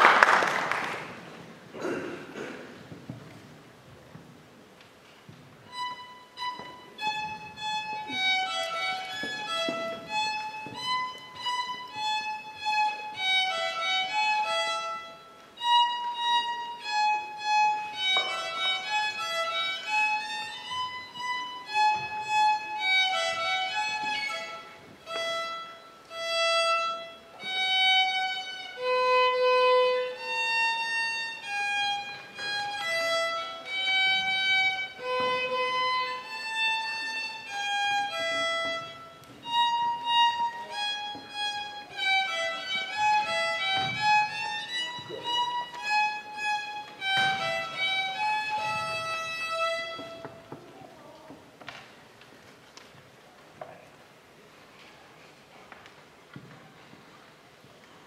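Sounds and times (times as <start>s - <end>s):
solo violin melody: 5.3s - 51.5s.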